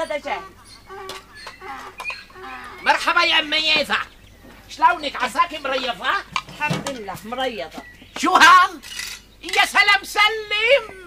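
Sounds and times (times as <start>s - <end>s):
person calling a greeting: 0.0s - 4.1s, 4.8s - 11.0s
hens clucking: 0.0s - 8.6s.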